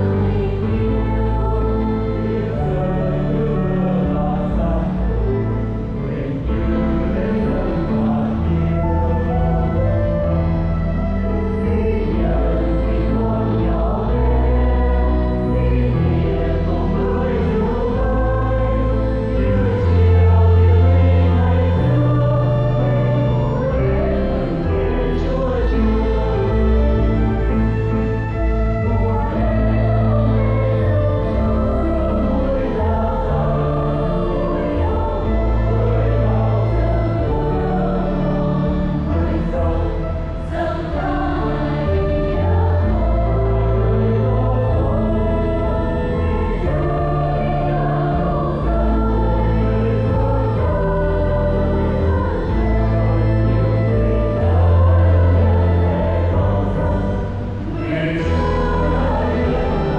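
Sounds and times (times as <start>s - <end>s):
choir singing a hymn: 0.0s - 59.9s
sustained keyboard chords: 0.0s - 59.9s.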